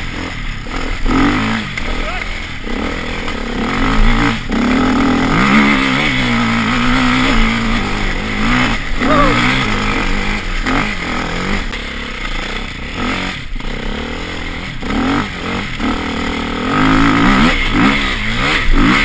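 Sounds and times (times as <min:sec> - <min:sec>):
off-road motorcycle engine revving: 0:00.0 - 0:19.0.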